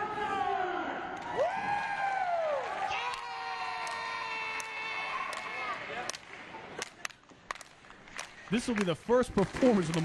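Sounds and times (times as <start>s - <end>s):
sharp handclaps: 3.1s - 10.0s.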